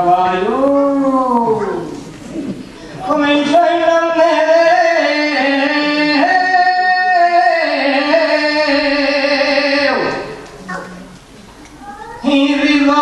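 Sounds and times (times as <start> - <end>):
singers holding long notes: 3.0 - 10.5.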